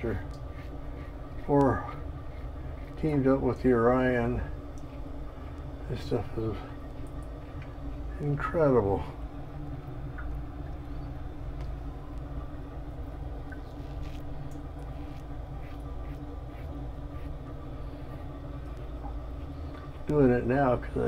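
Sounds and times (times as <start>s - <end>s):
low room hum: 0.0s - 21.0s
razor scraping stubble: 0.4s - 6.5s, 13.7s - 20.3s.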